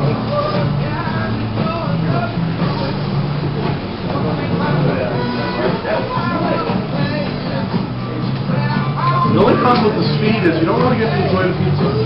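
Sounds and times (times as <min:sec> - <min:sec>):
background music: 0:00.0 - 0:12.0
faint voices: 0:04.0 - 0:12.0.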